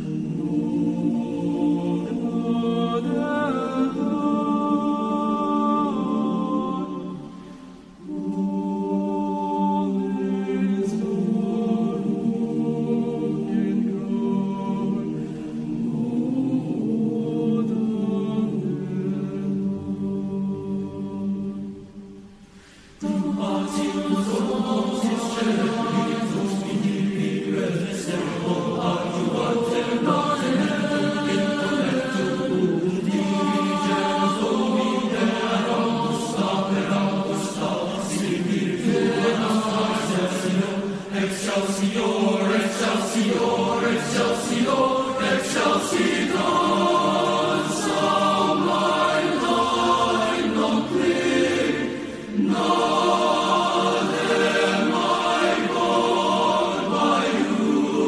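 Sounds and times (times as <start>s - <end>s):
boys' choir singing: 0.0s - 58.0s.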